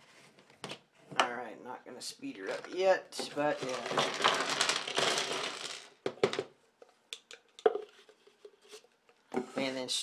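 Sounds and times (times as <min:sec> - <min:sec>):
plastic pieces rattling onto desk: 0:03.5 - 0:06.5.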